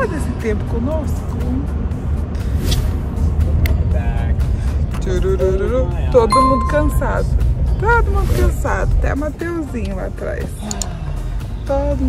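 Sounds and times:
melodic voice or music: 6.3s - 7.3s.

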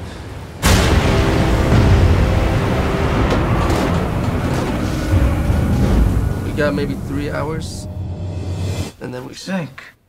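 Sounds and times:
low rumble of heavy seas: 0.0s - 8.8s
sustained music: 0.6s - 9.0s.

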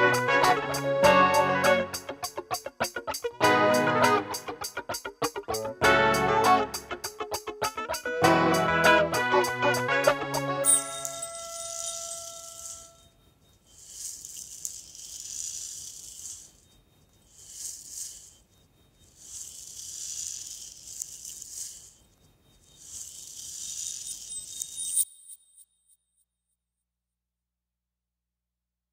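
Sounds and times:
rattle hand percussion: 0.0s - 22.0s, 22.7s - 25.3s
keyboard notes ringing: 8.5s - 13.0s
small bright ding: 10.6s - 13.0s.

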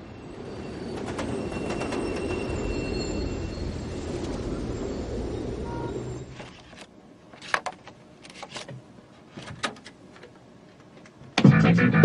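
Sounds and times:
thin high squeals: 0.1s - 6.7s.

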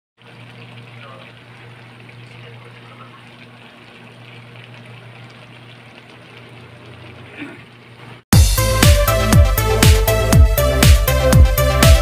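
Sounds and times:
sauce simmering in a metal pan: 0.2s - 8.0s.

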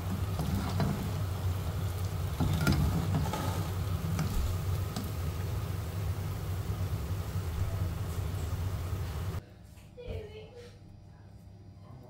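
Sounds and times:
deep-frying sizzle and crackle: 0.0s - 9.4s
steady low hum: 0.0s - 10.0s.

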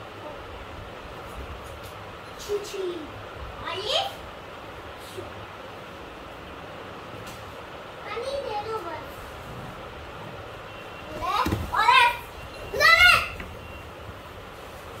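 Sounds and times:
young child crying out excitedly: 11.8s - 13.4s.

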